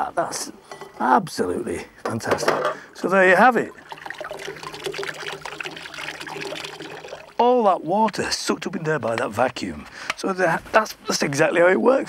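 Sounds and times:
water trickling into bowl: 3.1 - 7.9.

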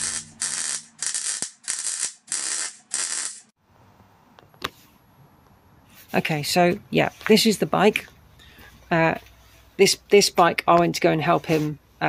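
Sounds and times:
welder crackling: 0.0 - 3.6.

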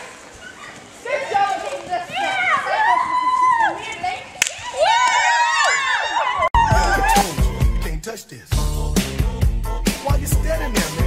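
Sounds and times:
children shouting excitedly: 0.0 - 7.9.

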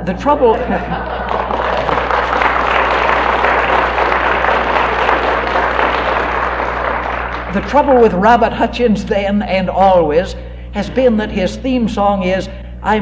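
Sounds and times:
audience laughing: 0.3 - 7.5
many hands clapping: 1.1 - 7.8.

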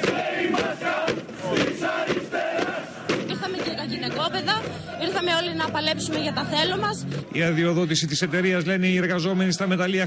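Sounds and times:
crowd chanting and shouting: 0.0 - 10.0.

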